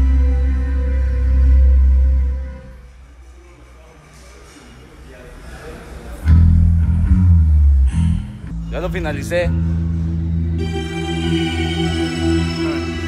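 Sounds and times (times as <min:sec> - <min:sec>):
live band with bass and guitar: 0:00.0 - 0:02.7, 0:06.2 - 0:13.0.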